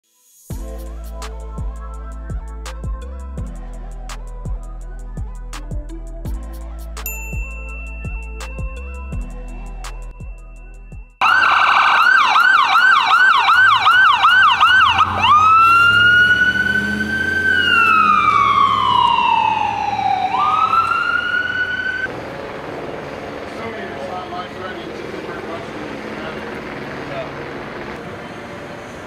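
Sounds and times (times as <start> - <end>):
ambulance siren yelp and wail: 11.2 - 22.1.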